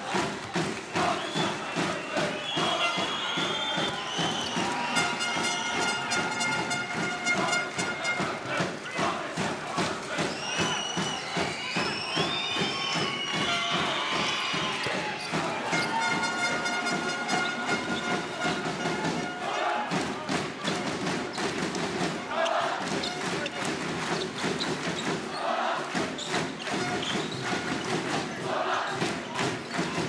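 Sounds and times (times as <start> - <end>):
crowd noise: 0.0 - 30.0.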